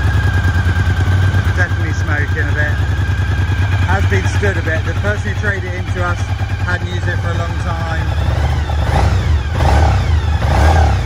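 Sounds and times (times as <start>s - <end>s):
rough motorcycle engine revving: 0.0s - 11.0s.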